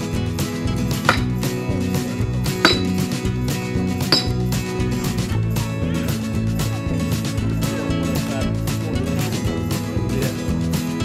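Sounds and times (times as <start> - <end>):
background music: 0.0 - 11.0
axe splitting firewood: 0.5 - 5.3.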